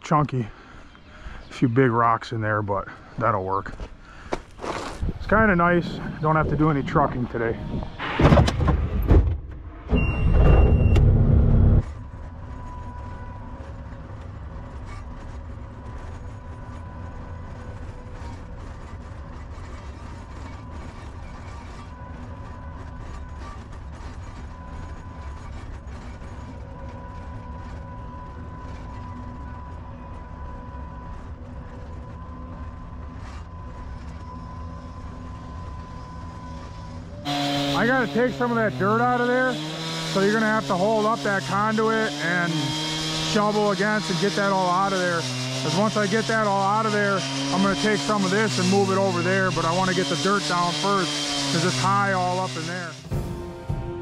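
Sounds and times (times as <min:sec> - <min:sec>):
loader engine running: 0:02.0 - 0:54.0.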